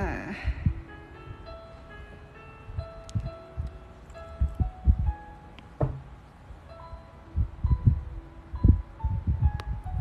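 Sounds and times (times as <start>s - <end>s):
dull low thuds: 4.4s - 5.2s, 5.8s - 6.2s.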